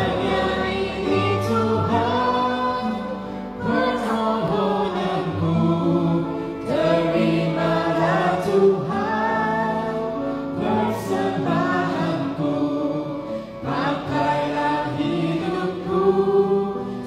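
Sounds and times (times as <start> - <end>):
musical accompaniment: 0.0 - 17.0
woman singing worship song: 0.0 - 17.0.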